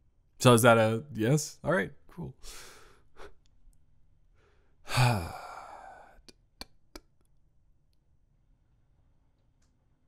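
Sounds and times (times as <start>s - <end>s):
faint intake of breath: 2.4s - 3.4s
man sighing: 4.8s - 6.3s.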